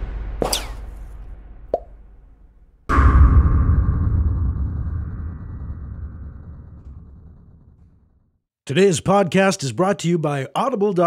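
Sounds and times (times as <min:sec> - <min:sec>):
low rumble: 0:00.0 - 0:08.5
pop sound effects: 0:00.4 - 0:00.9, 0:01.7 - 0:01.9.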